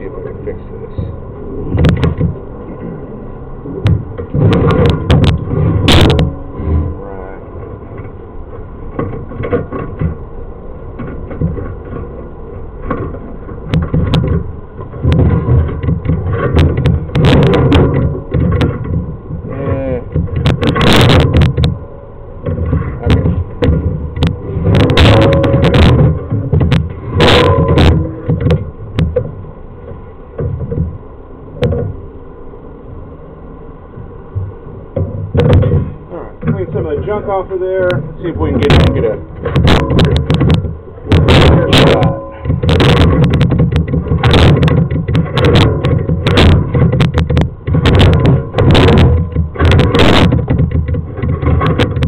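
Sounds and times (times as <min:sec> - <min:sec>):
microphone handling noise: 0:01.0 - 0:07.0, 0:11.0 - 0:31.0, 0:34.0 - 0:52.0.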